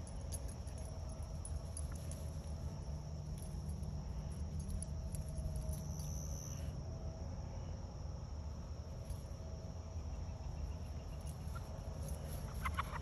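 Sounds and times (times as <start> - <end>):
crickets trilling: 0.0 - 13.0
low steady rumble: 0.0 - 13.0.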